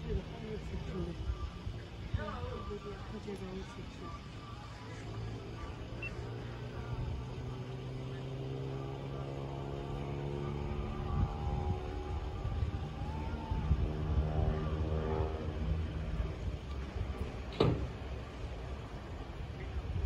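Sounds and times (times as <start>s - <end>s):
engine droning: 0.0s - 20.0s.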